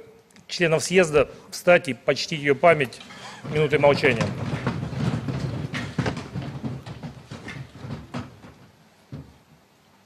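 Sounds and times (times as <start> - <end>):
audience shuffling and rustling: 0.3 - 10.0
knocks from seats: 3.4 - 9.4.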